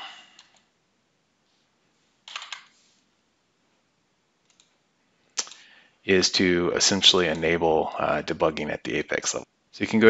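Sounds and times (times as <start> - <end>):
computer keyboard and mouse clicks: 2.2 - 2.7, 4.4 - 4.8.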